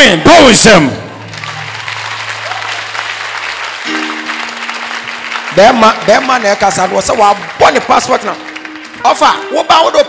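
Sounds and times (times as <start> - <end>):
congregation applauding: 0.0 - 10.0
sustained musical chord: 3.8 - 10.0.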